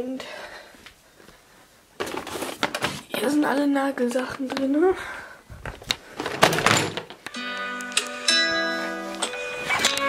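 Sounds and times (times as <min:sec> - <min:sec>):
box of small items clattering: 0:02.0 - 0:03.3, 0:05.8 - 0:07.2.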